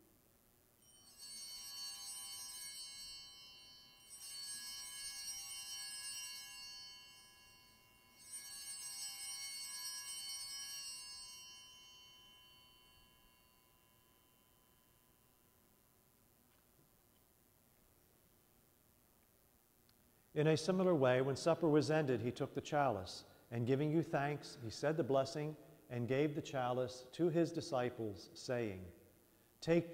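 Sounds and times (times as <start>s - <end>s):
altar bells ringing: 0.8s - 16.0s.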